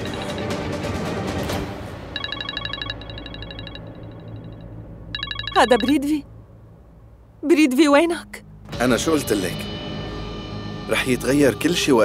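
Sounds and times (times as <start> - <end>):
mobile phone ringing trill: 0.0 - 0.6, 2.1 - 6.2.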